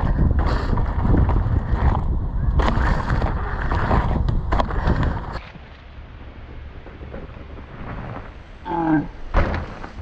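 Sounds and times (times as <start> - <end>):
wind buffeting microphone: 0.0 - 8.6
bike rattling: 0.0 - 10.0
bike tyre rumble on dirt trail: 0.0 - 10.0.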